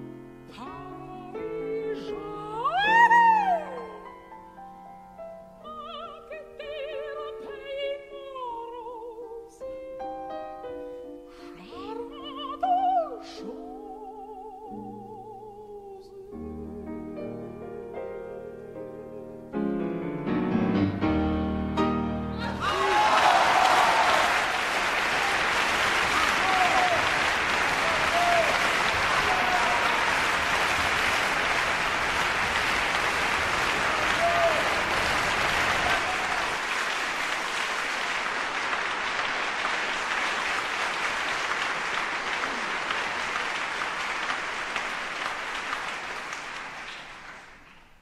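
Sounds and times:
audience applauding: 22.4 - 48.0
crowd shouting calls: 26.2 - 30.3.

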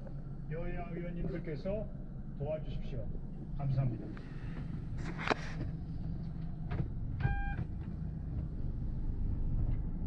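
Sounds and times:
car engine humming: 0.0 - 10.0
short electronic car beep: 7.2 - 7.6.

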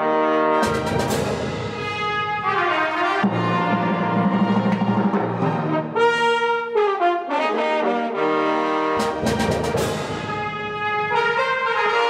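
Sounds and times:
brass orchestral chords: 0.0 - 12.0
percussion accent: 0.6 - 6.0, 9.0 - 11.1.

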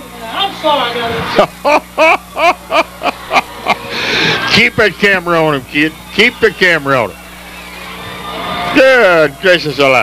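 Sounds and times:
man laughing heartily: 1.5 - 4.5.

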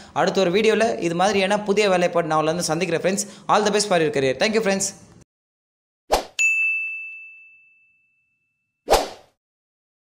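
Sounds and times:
bright bell-like ding: 6.4 - 8.8.

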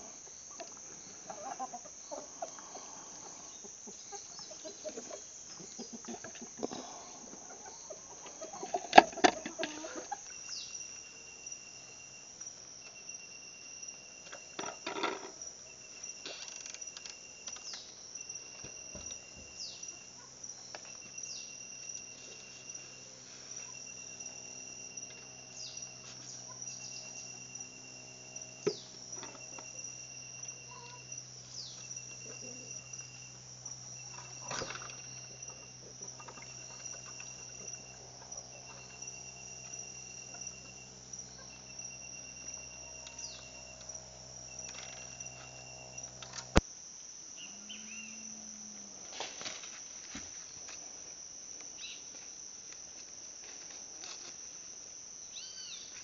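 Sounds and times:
insects chirping: 0.0 - 56.0
pulsed insect trill: 0.0 - 56.0.

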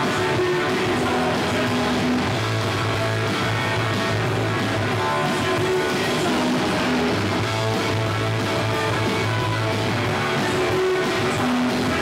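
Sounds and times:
bass line: 0.0 - 12.0
punk rock band playing live: 0.0 - 12.0
strummed electric guitar: 0.0 - 12.0.

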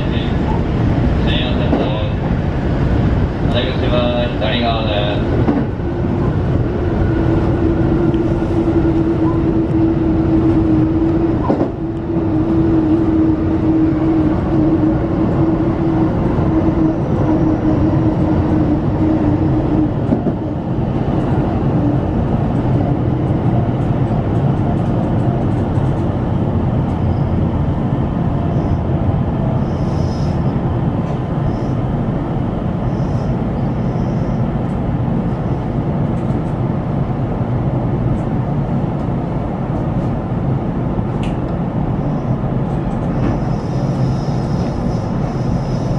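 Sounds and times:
electric train running rumble: 0.0 - 45.9.

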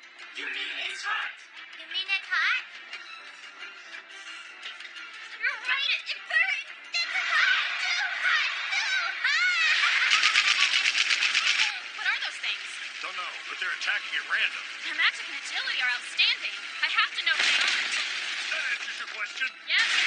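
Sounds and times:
rapid shots or impacts: 9.8 - 11.7, 17.1 - 20.0.

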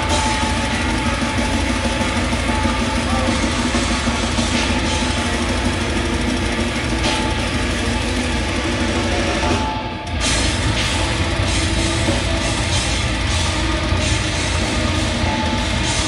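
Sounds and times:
cymbal crashes: 0.0 - 16.0
distorted guitar chugging: 0.0 - 16.0
pounding drums: 0.0 - 16.0.

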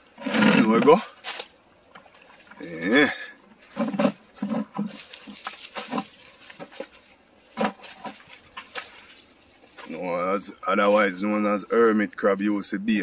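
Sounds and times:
footsteps through dry leaves: 4.8 - 10.1.

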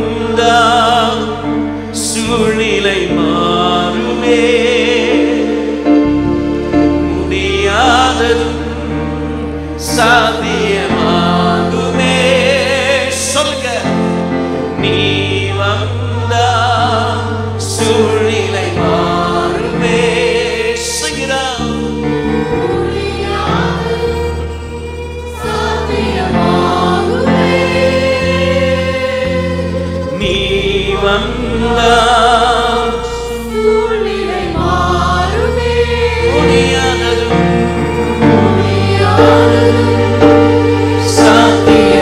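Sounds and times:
man singing lead: 0.0 - 24.4, 25.1 - 42.0
backing singers: 0.0 - 42.0
band playing gospel music: 0.0 - 42.0
sustained bass notes: 0.0 - 42.0.

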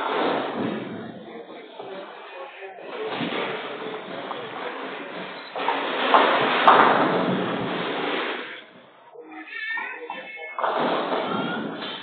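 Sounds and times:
bowling ball rolling: 0.0 - 2.2, 2.8 - 8.9, 10.6 - 12.0.

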